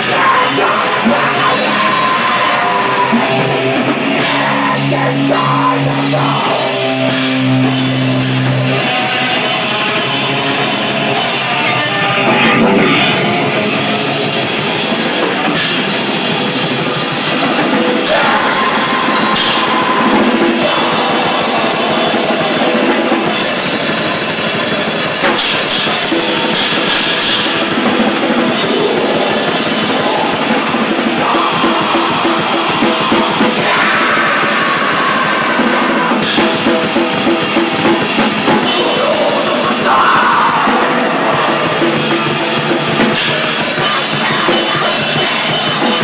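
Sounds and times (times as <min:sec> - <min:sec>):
drum kit: 0:00.0 - 0:46.0
live grindcore band playing: 0:00.0 - 0:46.0.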